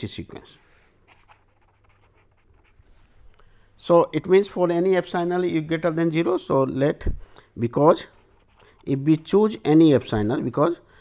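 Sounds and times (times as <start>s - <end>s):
pen scratching on paper: 1.1s - 2.9s, 8.0s - 9.0s.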